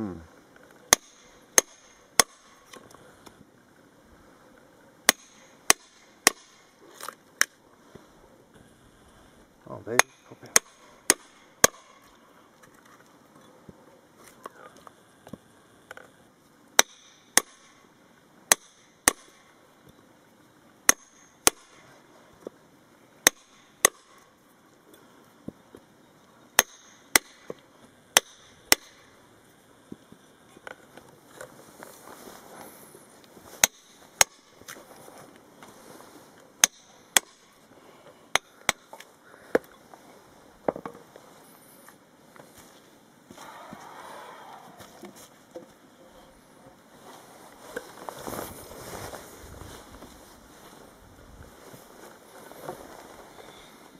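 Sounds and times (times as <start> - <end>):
hammer striking steel chisel: 10.0 - 12.0.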